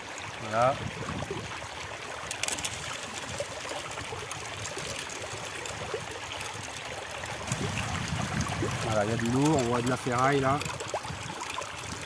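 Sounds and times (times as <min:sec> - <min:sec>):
water running through sluice box: 0:00.0 - 0:12.0.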